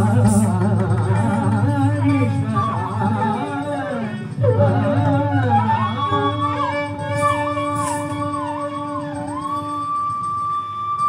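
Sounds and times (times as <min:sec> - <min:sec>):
flute melody with slides: 0:02.2 - 0:11.0.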